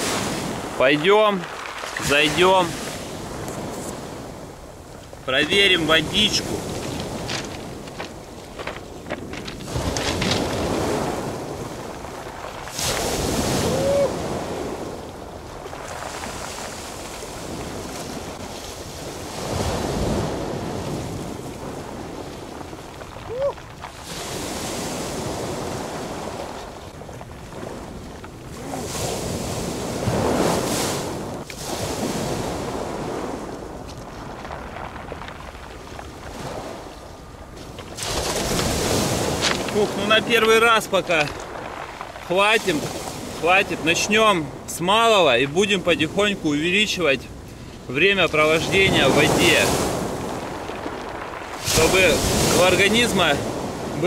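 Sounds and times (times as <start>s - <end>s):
waves washing onto pebble beach: 0.0s - 54.0s.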